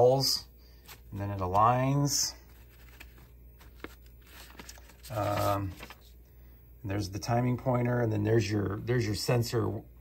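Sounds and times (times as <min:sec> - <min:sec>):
paper rustling: 0:00.7 - 0:06.2.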